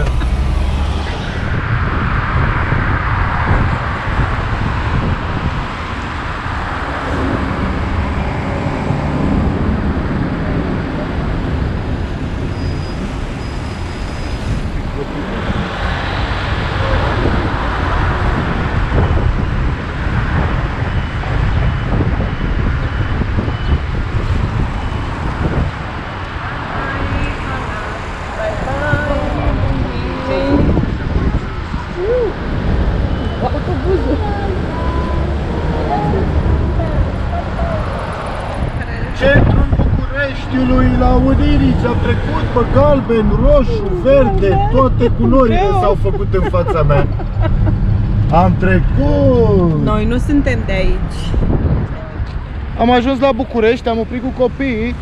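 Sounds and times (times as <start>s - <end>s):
car engine and tyre noise: 0.0s - 55.0s
surrounding traffic: 0.0s - 55.0s.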